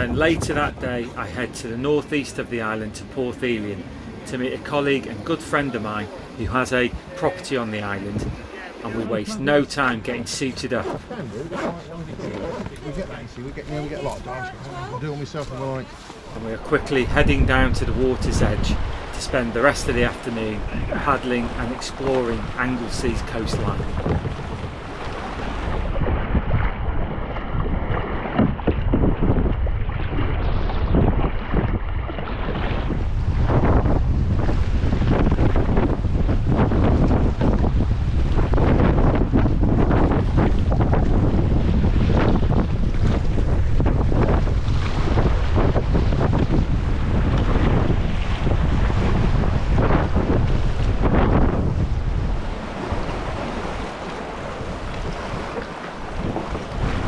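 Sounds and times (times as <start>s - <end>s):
wind buffeting microphone: 0.0s - 57.0s
sea water splashing around rocks: 10.9s - 57.0s.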